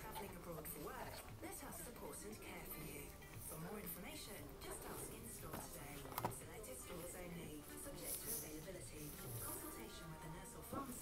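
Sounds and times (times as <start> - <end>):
faint indistinct voices: 0.0 - 11.0
in-store music playing quietly: 0.0 - 11.0.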